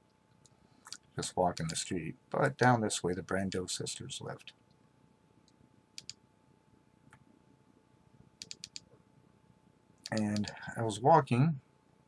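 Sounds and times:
computer mouse clicks: 0.3 - 1.8, 5.4 - 6.2, 8.4 - 9.0, 10.0 - 10.6.

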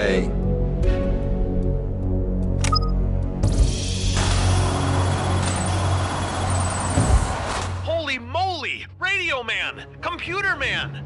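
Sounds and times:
cell door sliding mechanical rush: 4.1 - 7.8
thud: 7.0 - 7.7.

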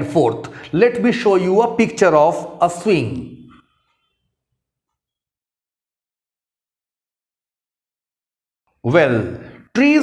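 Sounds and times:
man speaking: 0.0 - 3.6, 8.8 - 10.0.

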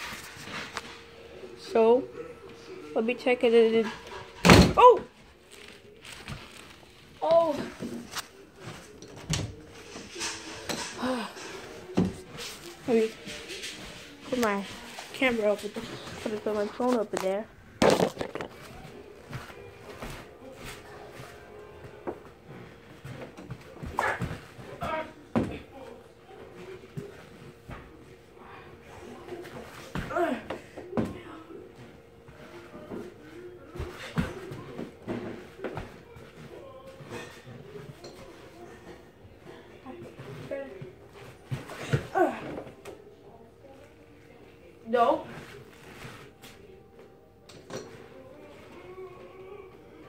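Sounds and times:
knocks and handling noises: 5.5 - 25.6.

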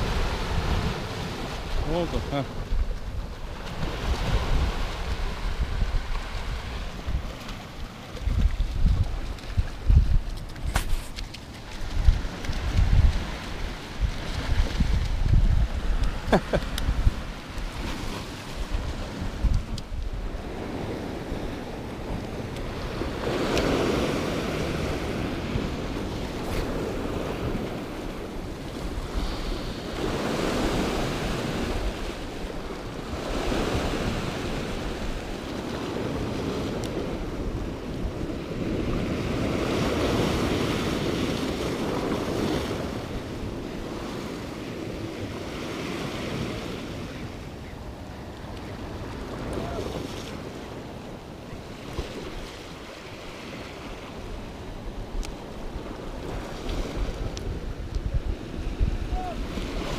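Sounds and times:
waves on rocky shore: 0.0 - 59.9.

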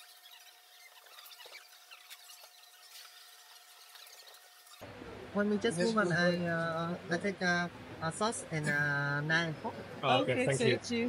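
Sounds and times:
small scattered ticks: 0.0 - 4.8.

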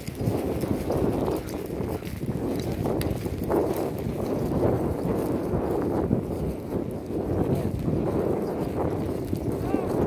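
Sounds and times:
gusty wind buffeting microphone: 0.0 - 10.0.

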